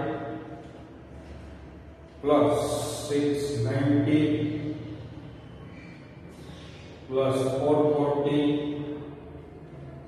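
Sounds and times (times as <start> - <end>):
man chanting a drawn-out tone: 2.3 - 5.0.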